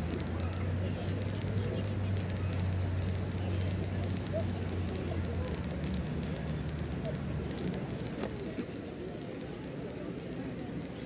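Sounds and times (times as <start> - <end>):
outdoor crowd murmur: 0.0 - 11.0.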